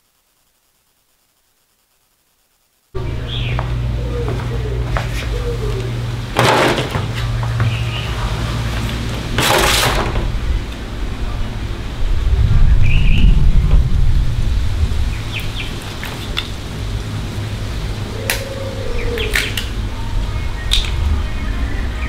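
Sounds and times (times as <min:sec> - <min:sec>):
loud low hum: 0:03.0 - 0:22.0
wind buffeting microphone: 0:10.0 - 0:22.0.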